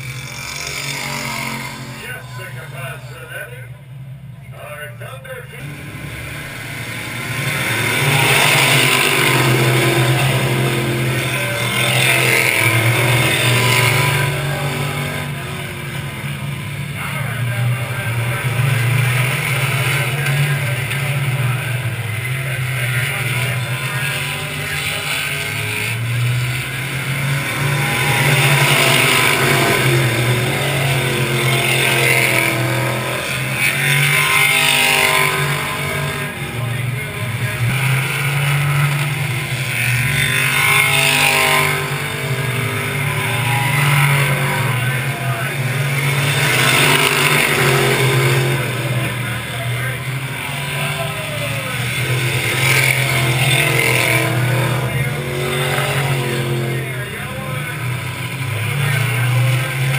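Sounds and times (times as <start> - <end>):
race car engines passing: 0.0 - 59.9.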